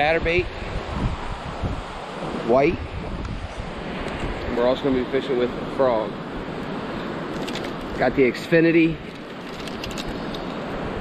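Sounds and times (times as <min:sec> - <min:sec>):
wind noise on microphone: 0:00.0 - 0:05.2.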